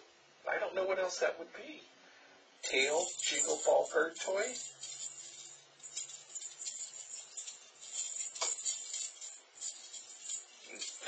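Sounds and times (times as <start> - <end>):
small bell toy jingling: 2.6 - 11.0.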